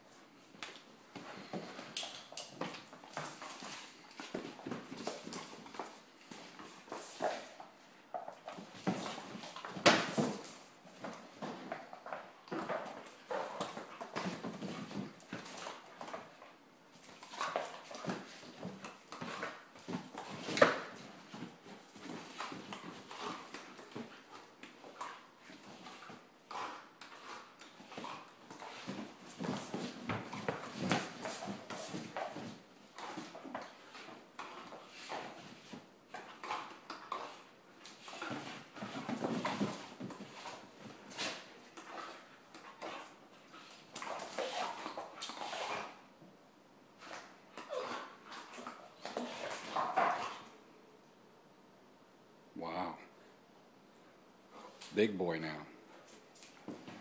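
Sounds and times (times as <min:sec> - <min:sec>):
dogs play-fighting: 0:00.5 - 0:50.7, 0:55.9 - 0:57.0.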